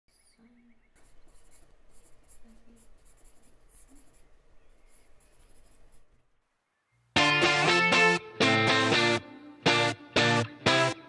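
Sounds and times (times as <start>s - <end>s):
pencil scratching on paper: 0.9s - 6.2s.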